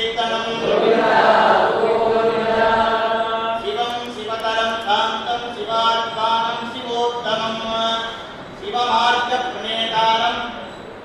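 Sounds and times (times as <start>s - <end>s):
group of voices chanting: 0.6s - 3.4s.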